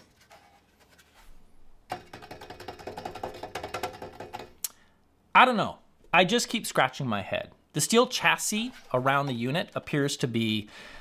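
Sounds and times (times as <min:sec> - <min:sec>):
rapid woody percussive taps: 0:01.9 - 0:04.6.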